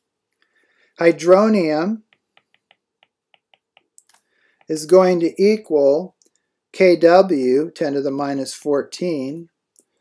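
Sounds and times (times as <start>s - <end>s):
stylus tapping on tablet screen: 2.0s - 4.8s.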